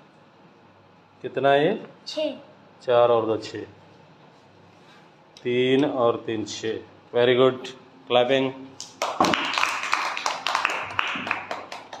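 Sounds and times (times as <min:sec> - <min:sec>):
children clapping: 0:08.8 - 0:12.0.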